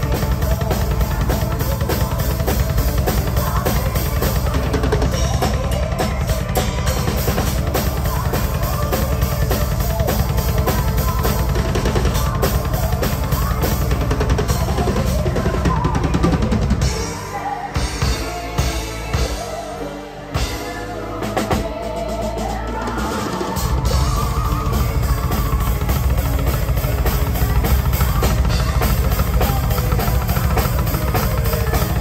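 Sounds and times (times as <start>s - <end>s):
fast double bass drumming: 0.0s - 19.8s, 20.4s - 32.0s
symphonic metal band playing: 0.0s - 32.0s.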